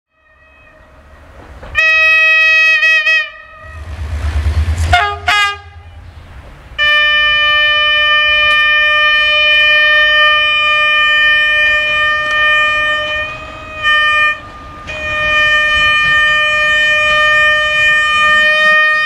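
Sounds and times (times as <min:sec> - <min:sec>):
train horn blasts: 0:00.1 - 0:01.0, 0:01.7 - 0:06.0, 0:06.8 - 0:19.0
train low rumble: 0:00.2 - 0:19.0.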